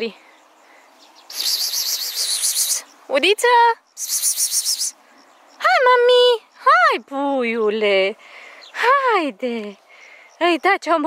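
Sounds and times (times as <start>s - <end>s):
insect stridulating buzz: 0.0s - 7.1s, 9.7s - 10.8s.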